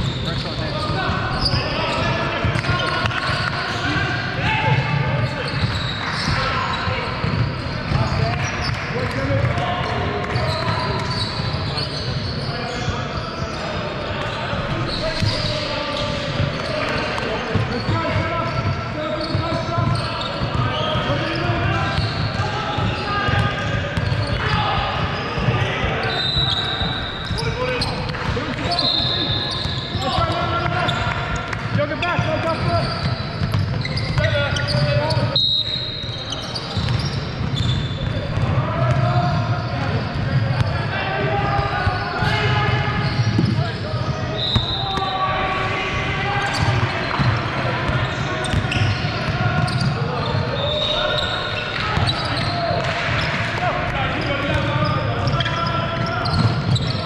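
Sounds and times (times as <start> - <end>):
shoe squeaks on hardwood: 5.2 - 8.8, 10.3 - 13.7, 14.8 - 31.2, 31.8 - 38.2, 43.0 - 45.3, 46.2 - 53.4, 54.1 - 57.0
basketball bouncing: 32.5 - 34.4.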